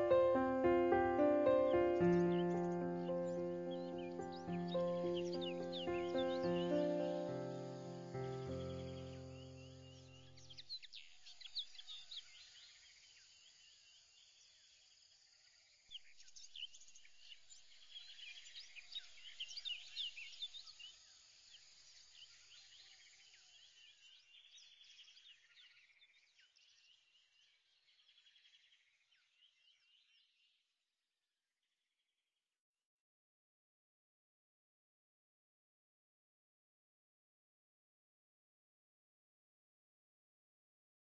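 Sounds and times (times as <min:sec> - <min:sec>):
background music chord: 0:00.0 - 0:10.2
birds chirping: 0:00.0 - 0:12.4.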